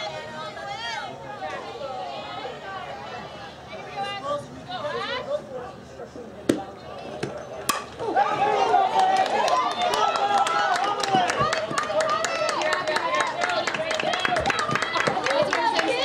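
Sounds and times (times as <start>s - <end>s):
bat striking ball: 6.5s - 8.0s
crowd shouting and cheering: 7.4s - 16.0s
people clapping: 8.8s - 16.0s.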